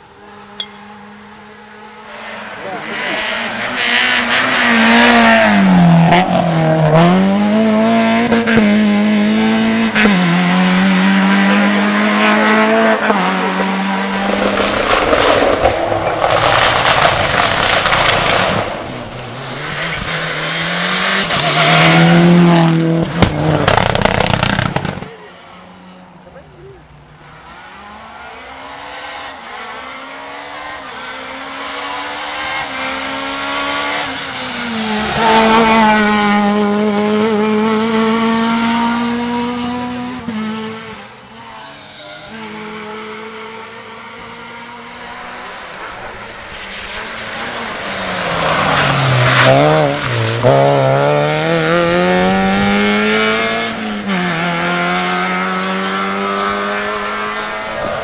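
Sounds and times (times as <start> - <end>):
rally car approaching: 0.0 - 58.0
rally car engine revving: 0.3 - 58.0.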